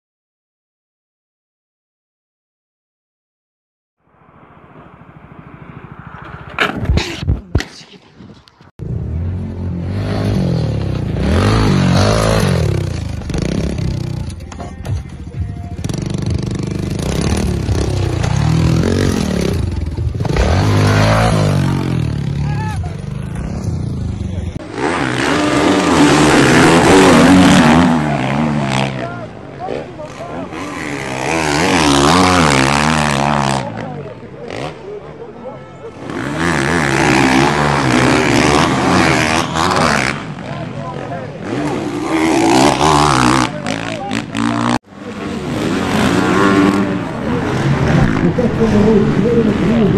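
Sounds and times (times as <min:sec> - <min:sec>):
dirt bike engines revving: 0:08.6 - 0:49.9
people shouting: 0:22.4 - 0:23.0.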